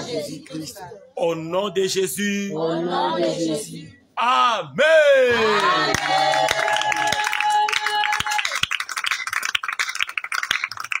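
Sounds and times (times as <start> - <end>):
people clapping: 5.4 - 11.0.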